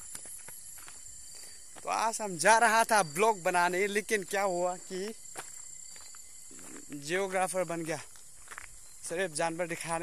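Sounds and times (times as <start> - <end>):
footsteps on dirt: 0.0 - 10.0
high insect drone: 0.0 - 10.0.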